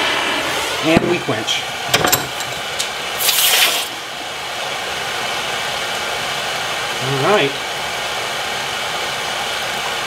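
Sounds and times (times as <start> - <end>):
gas torch flame hissing: 0.0 - 10.0.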